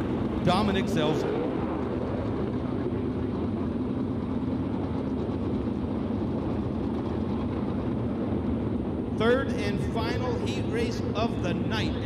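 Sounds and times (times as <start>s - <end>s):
race car engines running steadily: 0.0s - 12.0s.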